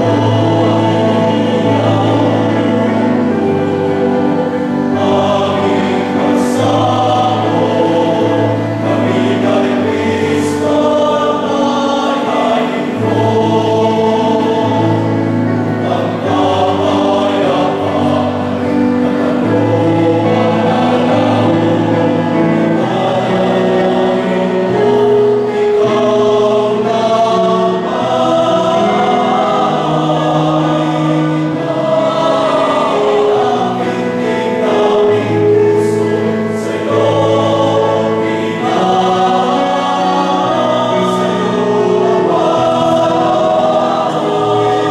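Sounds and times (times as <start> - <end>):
male choir singing in harmony: 0.0 - 44.9.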